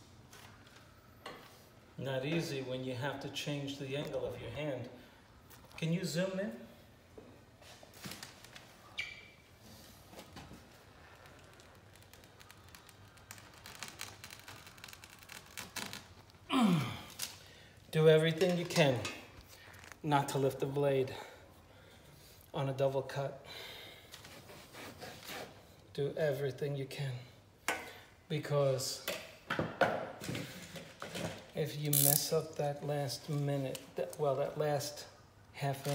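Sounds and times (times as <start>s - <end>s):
breathy sigh: 16.5s - 17.7s
knife scraping through wallpaper: 24.2s - 25.7s.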